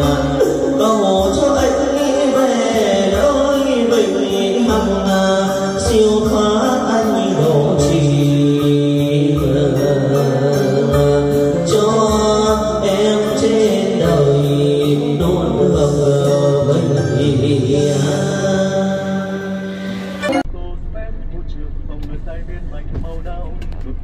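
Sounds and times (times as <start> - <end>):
person singing lament into microphone: 0.0 - 20.4
keyboard low drone: 0.0 - 24.0.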